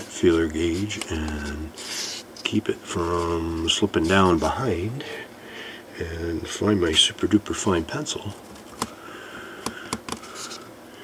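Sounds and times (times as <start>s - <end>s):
faint room tone: 0.0s - 11.0s.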